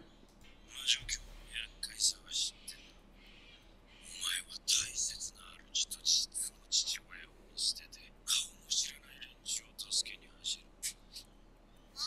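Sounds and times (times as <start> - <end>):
person whispering: 0.7 - 2.8, 4.0 - 11.2.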